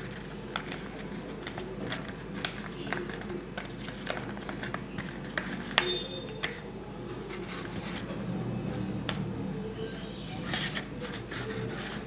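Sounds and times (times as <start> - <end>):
paper rustling: 0.0 - 8.3, 10.4 - 12.0.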